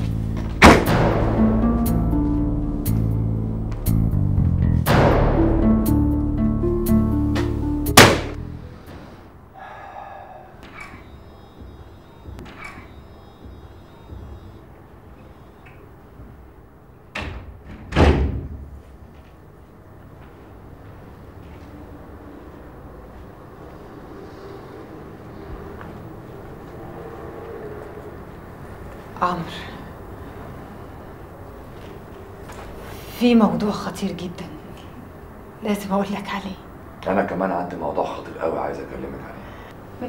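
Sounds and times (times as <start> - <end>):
background music: 0.0 - 9.5
loud sharp hit with ringing tail: 0.6 - 1.6.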